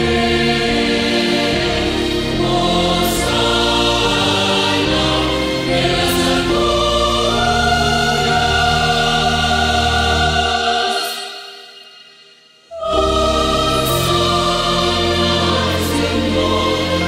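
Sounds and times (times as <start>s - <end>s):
low instrumental accompaniment: 0.0s - 10.7s, 12.7s - 17.0s
choir singing a hymn: 0.0s - 12.1s, 12.7s - 17.0s.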